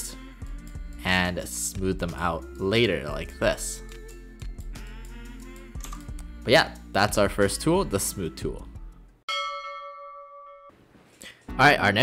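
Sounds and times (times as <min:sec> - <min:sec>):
bell-like chime ringing: 0:09.3 - 0:10.8.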